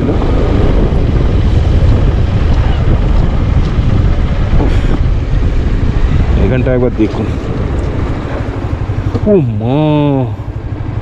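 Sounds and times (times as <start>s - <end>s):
motorcycle engine rumble: 0.0s - 11.0s
wind on microphone: 0.0s - 11.0s.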